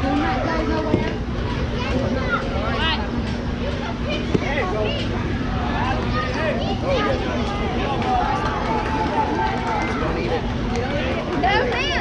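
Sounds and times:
people talking: 0.0 - 12.0
steady low hum: 0.0 - 12.0.

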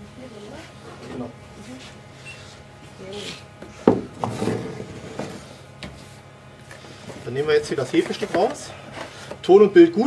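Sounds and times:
containers knocking and rubbing: 7.7 - 9.4.

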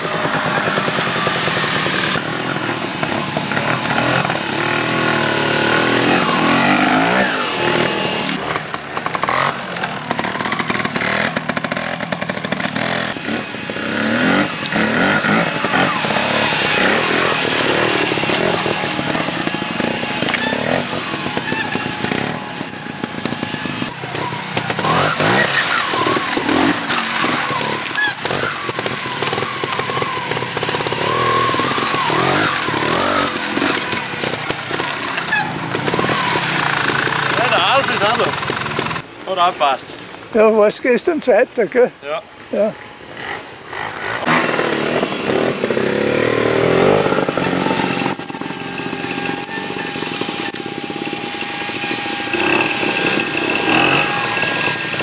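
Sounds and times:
motorcycle engines revving: 0.0 - 55.0.

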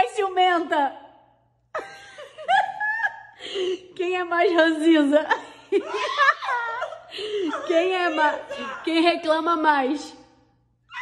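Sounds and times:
people laughing: 5.3 - 9.0.

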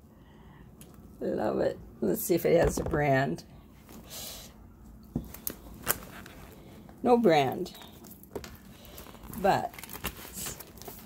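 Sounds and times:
handbag rustling: 5.2 - 11.0.

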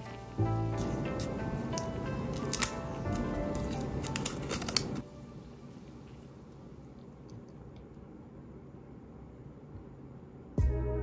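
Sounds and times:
background music: 0.0 - 5.5, 10.6 - 11.0
plastic wrap crinkling and clicking: 1.2 - 5.0.

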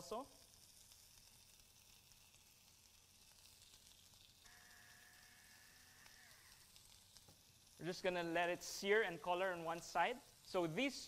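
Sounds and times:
meat sizzling in a hot bowl: 0.0 - 11.0.

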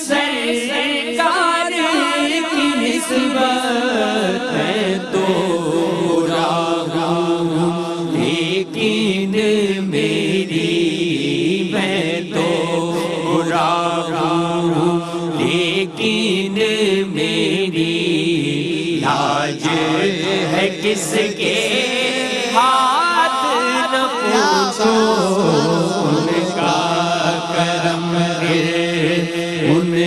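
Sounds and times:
man singing devotional song: 0.0 - 30.0
steady held drone: 23.9 - 30.0.

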